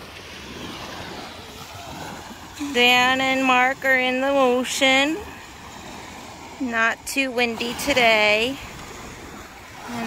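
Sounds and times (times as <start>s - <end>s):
small waves breaking on sand: 0.0s - 10.0s.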